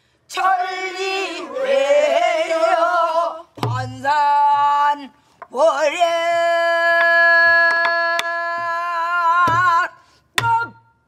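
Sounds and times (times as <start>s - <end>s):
drumstick taps on wooden rim: 7.0s - 8.3s.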